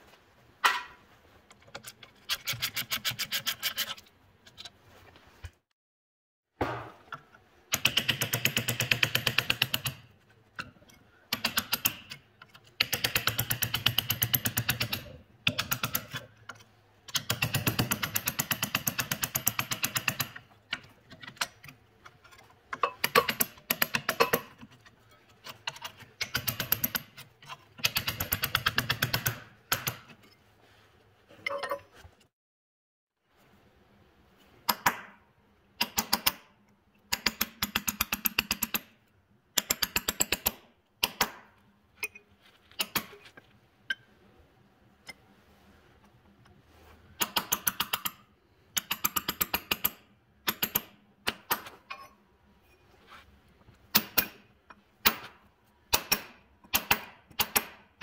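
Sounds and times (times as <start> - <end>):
socket ratchet clicking: 48.8 - 51.4.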